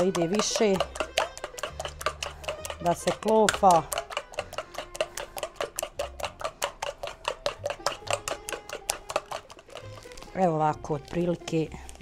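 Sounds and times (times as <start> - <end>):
spoon beating eggs in a bowl: 0.0 - 12.0.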